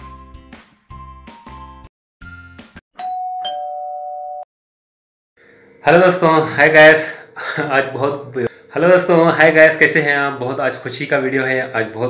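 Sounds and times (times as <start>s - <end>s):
music: 0.0s - 2.8s
two-note doorbell chime: 3.0s - 4.4s.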